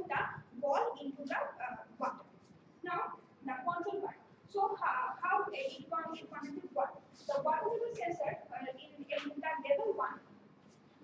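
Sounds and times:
woman speaking: 0:00.0 - 0:10.2.

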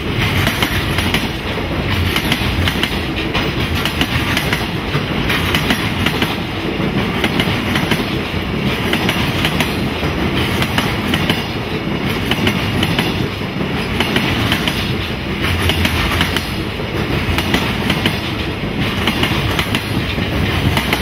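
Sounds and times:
train wheels rumbling on rail: 0:00.0 - 0:21.0
wheels clacking over rail joints: 0:00.0 - 0:21.0.

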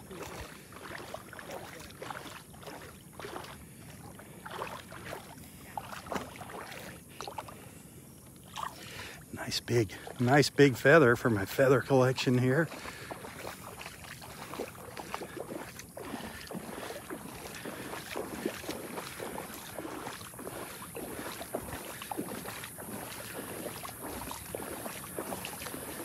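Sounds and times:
footsteps wading through water: 0:00.0 - 0:26.0.

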